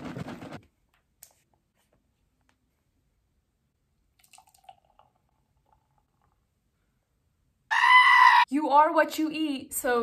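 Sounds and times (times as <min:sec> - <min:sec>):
milk gurgling into glass: 0:04.2 - 0:06.4.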